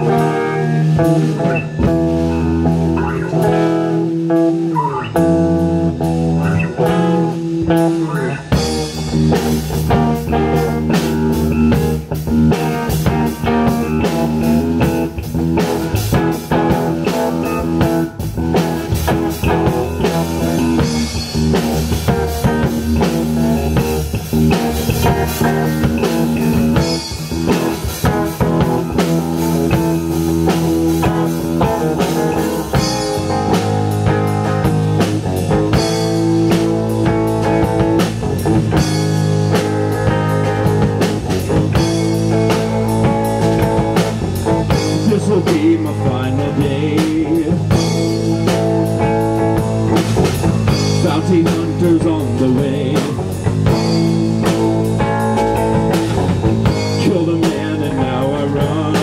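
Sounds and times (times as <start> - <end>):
bass guitar: 0.0 - 59.0
drum kit: 0.0 - 59.0
electric guitar: 0.0 - 59.0.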